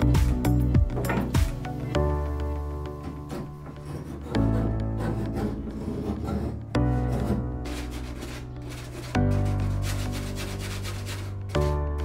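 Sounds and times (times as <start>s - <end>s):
background music with bass note: 0.0s - 12.0s
blade scraping fibreglass cloth: 3.3s - 11.8s.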